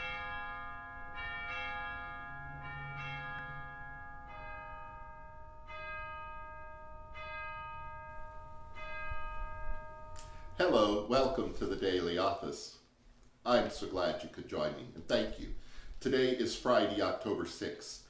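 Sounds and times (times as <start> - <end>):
bells ringing single notes: 0.0 - 11.0.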